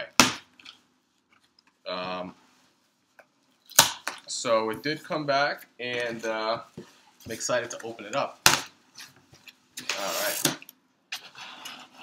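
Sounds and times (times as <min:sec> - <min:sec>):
cardboard ripping: 0:09.9 - 0:10.6.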